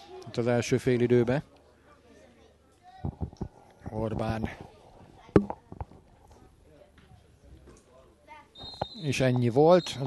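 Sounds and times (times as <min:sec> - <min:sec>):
referee's whistle blast: 0:08.6 - 0:09.2.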